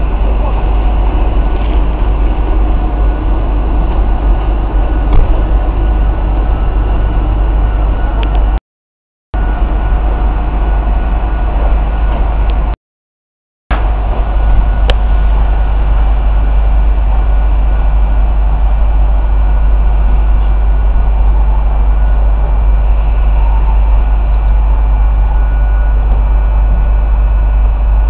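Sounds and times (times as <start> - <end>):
heavy low rumble: 0.0 - 8.6, 9.4 - 12.8, 13.7 - 28.0.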